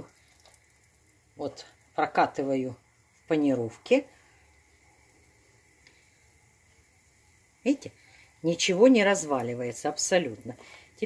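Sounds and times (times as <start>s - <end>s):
soft tick: 5.8s - 6.0s.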